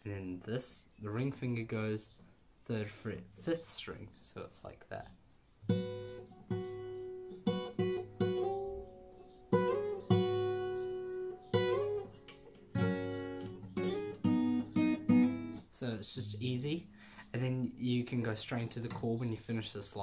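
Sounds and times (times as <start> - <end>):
acoustic guitar strumming: 5.6 - 17.2.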